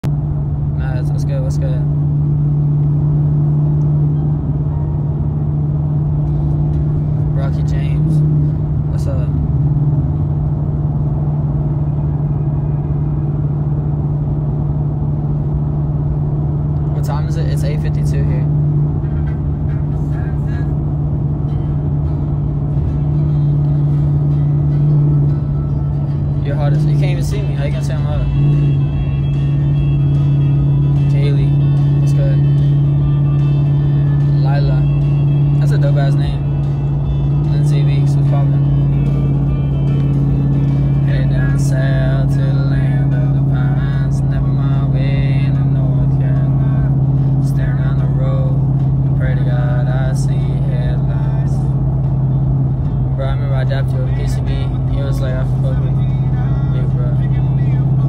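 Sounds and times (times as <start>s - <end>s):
car cabin drone: 0.0s - 58.0s
music playing: 16.9s - 58.0s.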